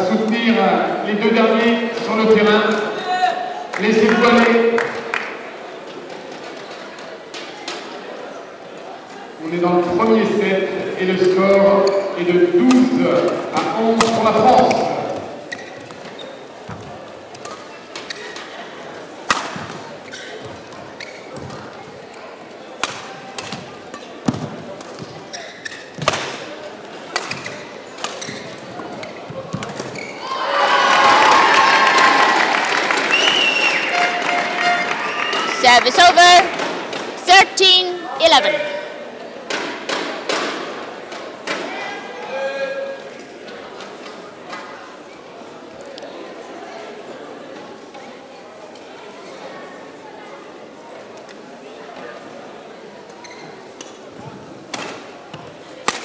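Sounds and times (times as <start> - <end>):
racket striking shuttlecock: 19.3 - 19.8, 22.8 - 25.2, 27.1 - 28.4
crowd shouts: 30.2 - 35.9
crowd cheering and clapping: 30.2 - 36.2.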